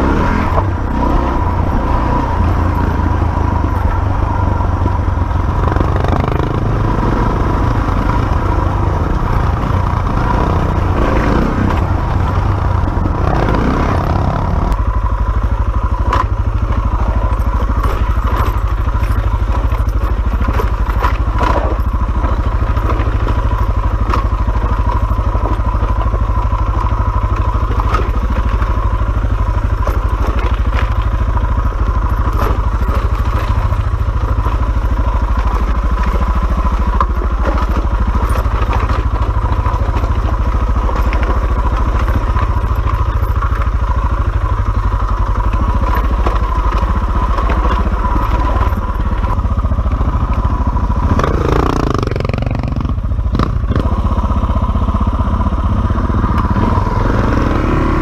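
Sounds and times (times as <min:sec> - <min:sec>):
dirt bike engine running: 0:00.0 - 0:58.0
bike clattering over stones: 0:16.2 - 0:31.4.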